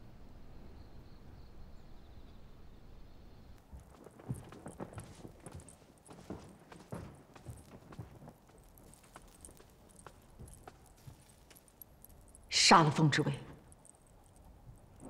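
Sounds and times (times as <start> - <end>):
faint knocking footsteps: 3.7 - 12.6.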